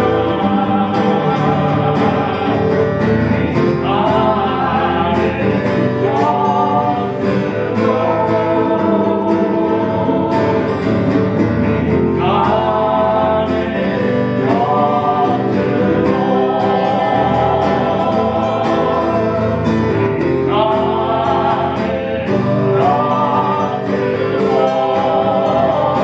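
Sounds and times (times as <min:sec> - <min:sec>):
two acoustic guitars: 0:00.0 - 0:26.0
woman and man singing together: 0:00.0 - 0:26.0.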